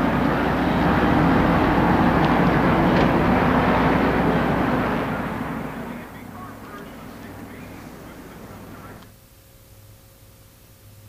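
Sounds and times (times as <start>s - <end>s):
race car engines droning: 0.0s - 9.1s.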